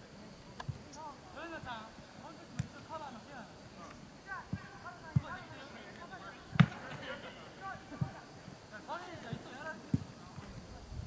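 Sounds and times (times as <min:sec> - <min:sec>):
football kick thumps: 0:04.5 - 0:05.4, 0:06.5 - 0:07.0, 0:09.3 - 0:10.1.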